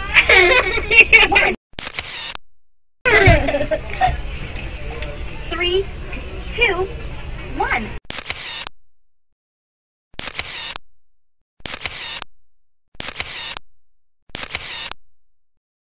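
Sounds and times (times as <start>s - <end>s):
camera shutter clicks: 1.8s - 2.4s, 8.1s - 8.7s, 10.2s - 10.8s, 11.6s - 12.2s, 13.0s - 13.6s, 14.3s - 15.0s.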